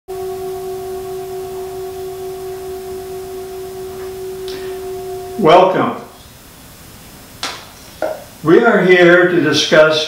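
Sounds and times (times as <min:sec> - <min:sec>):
metal singing bowl ringing: 0:00.1 - 0:06.3.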